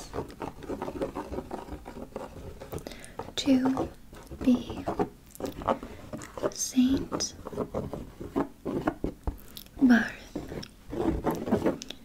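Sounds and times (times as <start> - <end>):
fingernails scratching and tapping fabric: 0.0 - 12.0.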